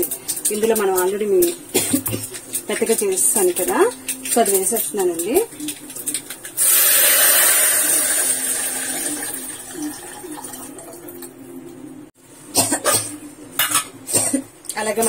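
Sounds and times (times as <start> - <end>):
liquid sizzling in hot pot: 0.0 - 10.6
liquid pouring: 2.1 - 11.4.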